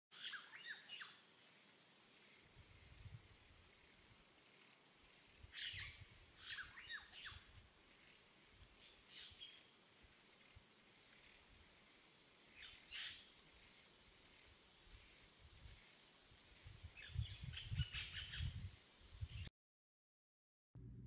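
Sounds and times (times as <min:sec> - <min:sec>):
songbirds chirping: 0:00.1 - 0:19.5
faint low rumble: 0:20.8 - 0:21.0.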